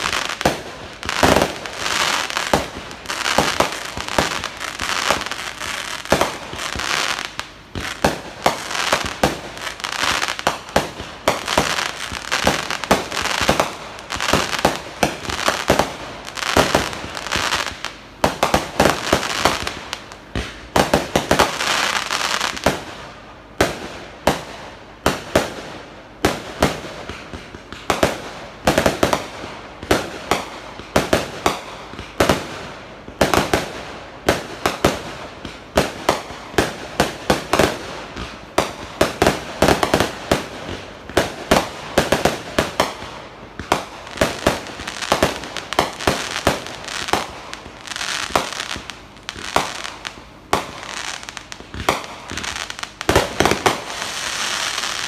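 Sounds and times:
firework crackle: 0.0 - 55.0.

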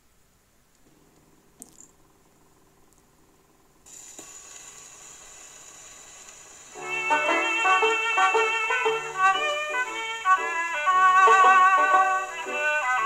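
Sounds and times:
record surface noise hiss: 0.0 - 13.0
violin music: 6.8 - 13.0.

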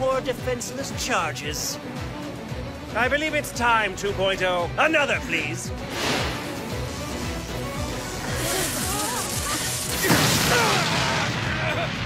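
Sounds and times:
dramatic music: 1.8 - 12.0
rushing blast with loud hit: 9.8 - 12.0.

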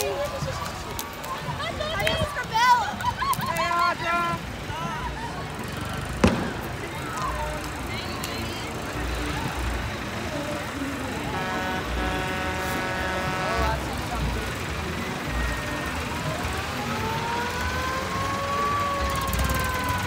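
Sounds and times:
street and crowd background: 0.0 - 20.0.

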